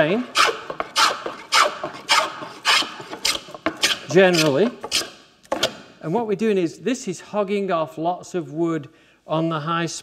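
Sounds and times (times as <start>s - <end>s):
hand plane shaving wood: 0.0s - 5.1s.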